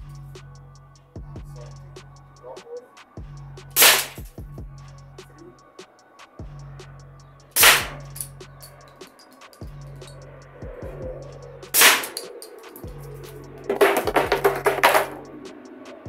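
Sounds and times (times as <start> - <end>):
low bass line music: 0.0 - 5.8, 6.4 - 12.2, 12.8 - 15.6
sharp pistol shots: 3.8 - 4.2, 7.6 - 8.0, 11.8 - 12.2
shots hitting wooden board: 3.8 - 4.2, 7.6 - 8.0, 11.8 - 12.2, 13.7 - 15.2
board clattering onto paving: 13.7 - 15.2.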